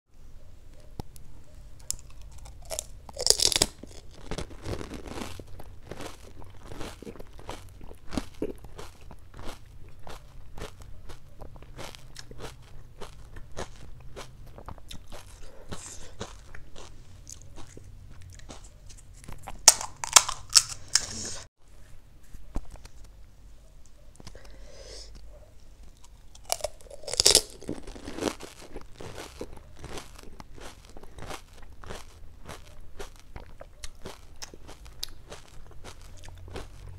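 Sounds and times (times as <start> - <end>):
wet chewing: 0.8 - 21.2, 24.0 - 36.9
crunching crisp food: 1.0 - 21.3, 24.2 - 36.9
crisp shell cracking: 1.8 - 7.4, 19.3 - 21.1, 26.0 - 31.7.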